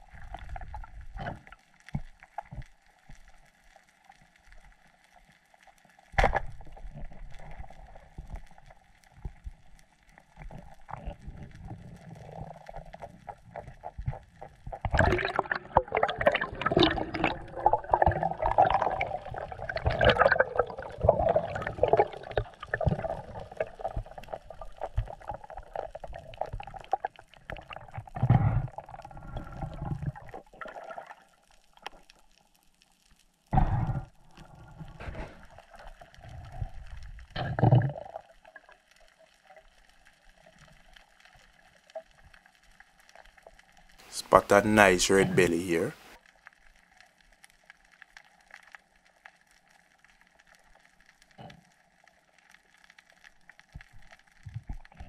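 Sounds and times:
bubbling and gurgling water: 0:00.0 - 0:44.1, 0:46.1 - 0:55.0.

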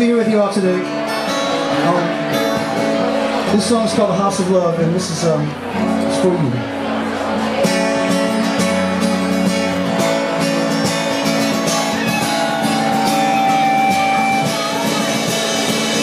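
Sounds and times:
strummed acoustic guitar: 0:00.0 - 0:16.0
live band music: 0:07.5 - 0:16.0.

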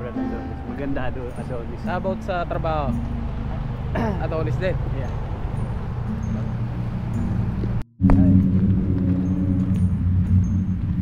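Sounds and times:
wind rumble on microphone: 0:04.7 - 0:11.0.

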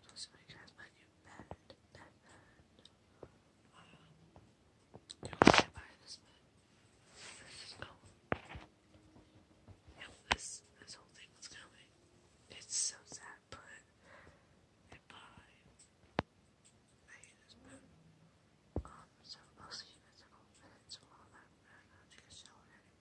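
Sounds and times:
woman whispering: 0:00.0 - 0:02.7, 0:03.7 - 0:04.2, 0:05.1 - 0:06.4, 0:07.1 - 0:08.1, 0:09.9 - 0:11.9, 0:12.5 - 0:13.9, 0:14.9 - 0:15.9, 0:17.0 - 0:18.0, 0:18.8 - 0:23.0.

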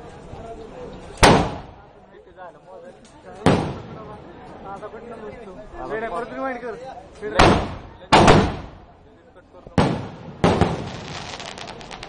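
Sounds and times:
firework bangs: 0:01.2 - 0:01.8, 0:03.4 - 0:04.2, 0:07.4 - 0:08.9, 0:09.8 - 0:12.0
firework crackles: 0:09.8 - 0:12.0.

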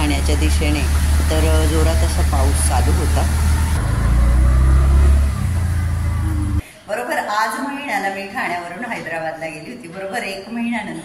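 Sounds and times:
auto-rickshaw engine rumbling: 0:00.0 - 0:06.6.

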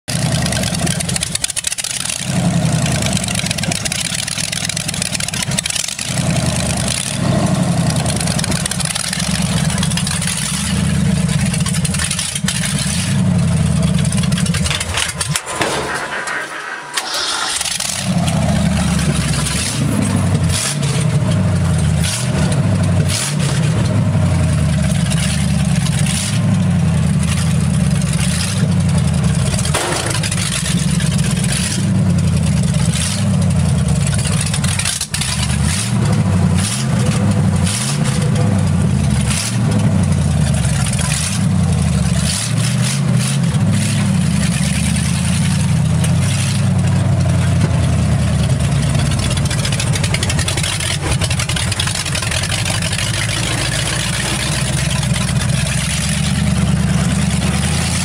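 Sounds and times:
truck engine pulsing rumble: 0:00.0 - 0:58.0.

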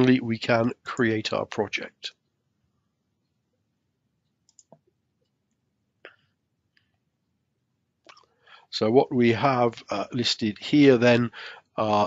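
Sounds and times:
faint quick clicks: 0:04.5 - 0:04.9.

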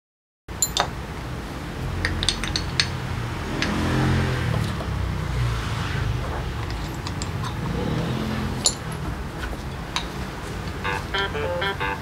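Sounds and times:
metallic clicks of brake parts: 0:00.6 - 0:01.0, 0:02.0 - 0:03.0, 0:06.6 - 0:07.7
vehicle engine hum: 0:01.0 - 0:12.0.

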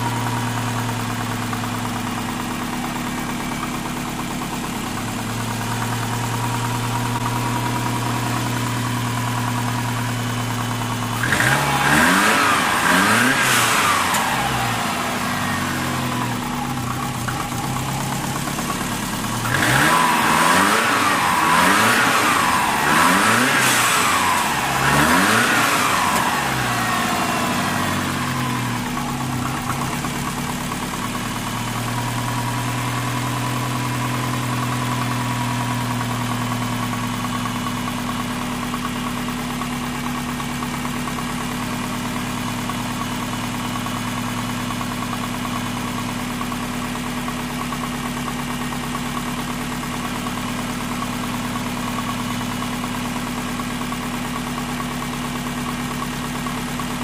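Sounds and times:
car engine idling and revving: 0:00.0 - 0:57.0.

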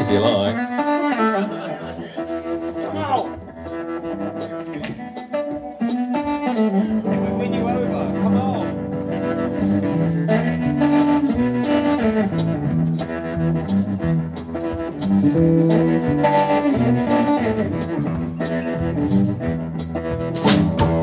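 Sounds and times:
electric bass line: 0:00.0 - 0:21.0
electric guitars: 0:00.0 - 0:21.0
drum kit steady beat: 0:01.9 - 0:21.0.

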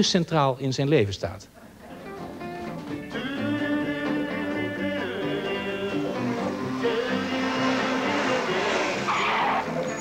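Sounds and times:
background music: 0:01.9 - 0:10.0
tyre screech: 0:06.6 - 0:10.0.

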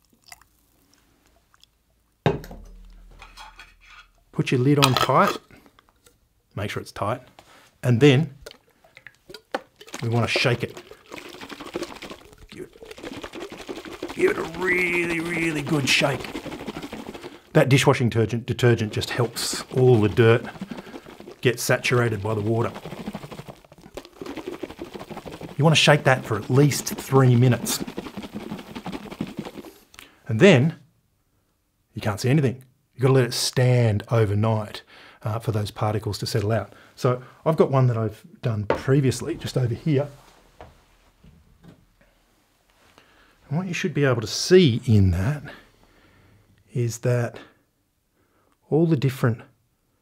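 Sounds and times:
metal jug clunk ringing: 0:02.3 - 0:03.8
muddy water shaken in glass jar: 0:08.3 - 0:29.9.

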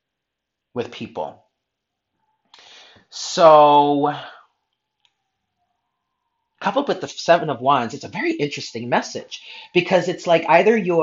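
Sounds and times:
person speaking: 0:06.6 - 0:11.0.

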